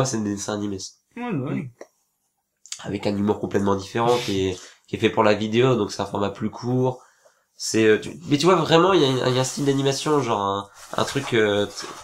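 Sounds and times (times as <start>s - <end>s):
man talking: 0.0s - 1.8s, 2.7s - 7.0s, 7.6s - 12.0s.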